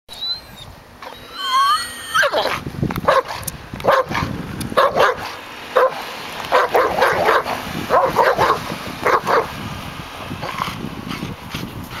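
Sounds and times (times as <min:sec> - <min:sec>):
dog whining: 0:00.1 - 0:02.6
dog barking: 0:02.2 - 0:09.5.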